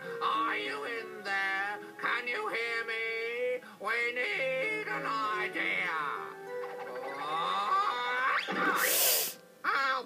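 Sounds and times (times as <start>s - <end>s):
background music: 0.0s - 10.0s
hissing whoosh: 8.5s - 9.4s.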